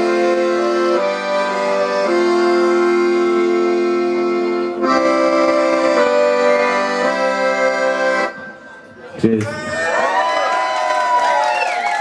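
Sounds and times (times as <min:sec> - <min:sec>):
accordion playing chords: 0:00.0 - 0:09.4.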